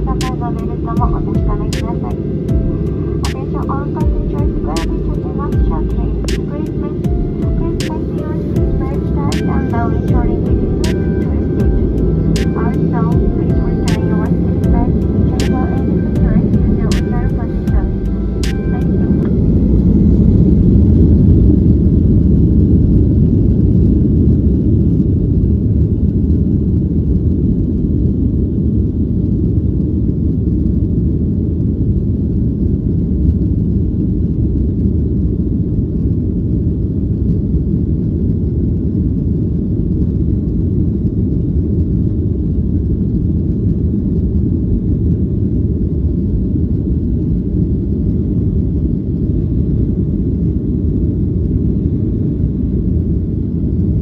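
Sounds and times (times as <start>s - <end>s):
deep rumble of takeoff roll: 0.0s - 54.0s.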